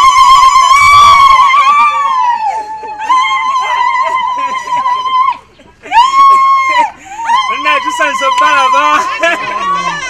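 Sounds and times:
woman ululating: 0:00.0 - 0:10.0.

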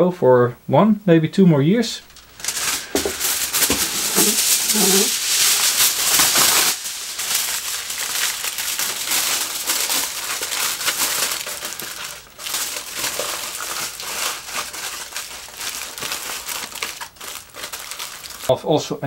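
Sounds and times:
aluminium foil crinkling: 0:02.0 - 0:18.5.

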